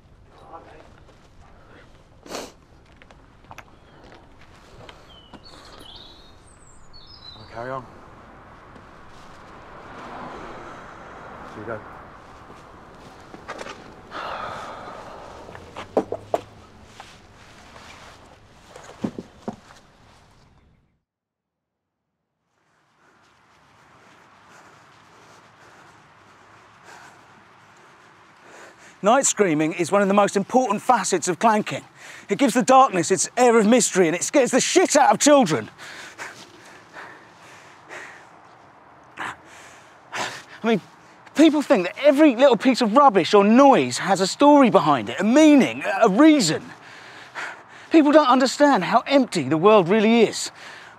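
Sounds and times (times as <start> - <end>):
quiet movement sounds: 0.0 - 20.8, 22.6 - 50.9
breathy rush: 3.8 - 19.2, 22.6 - 50.9
man breathing softly: 14.1 - 16.0, 22.8 - 29.0, 35.8 - 41.2, 50.5 - 50.9
sharp knocks: 15.8 - 16.6.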